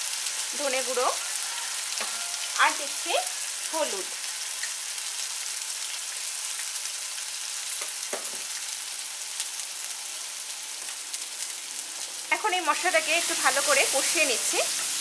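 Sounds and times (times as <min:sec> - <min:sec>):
hot oil sizzling: 0:00.0 - 0:15.0.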